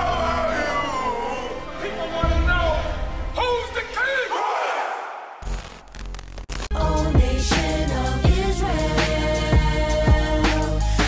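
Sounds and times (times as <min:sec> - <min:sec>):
men shouting: 0:00.0 - 0:02.5, 0:04.0 - 0:05.4
music with bass: 0:06.1 - 0:11.0.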